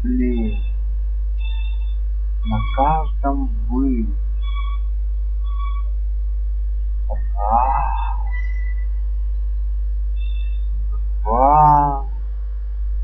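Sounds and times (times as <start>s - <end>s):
ambient relaxation music drone: 0.0s - 13.0s
soft high sustained tones: 0.0s - 13.0s
voice-like gliding sound: 7.1s - 8.3s, 11.3s - 12.1s.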